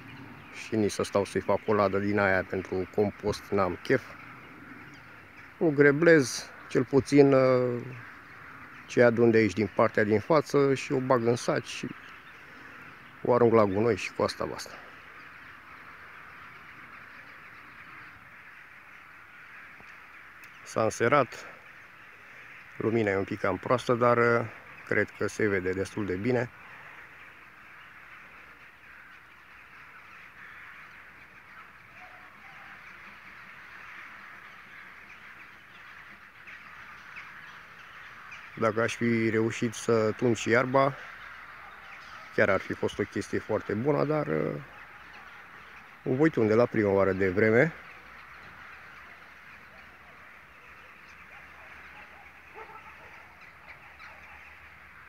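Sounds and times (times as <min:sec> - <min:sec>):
distant bird calls: 0:00.0 - 0:55.0
distant crows cawing: 0:00.0 - 0:55.0
faint outdoor ambience: 0:00.0 - 0:55.0.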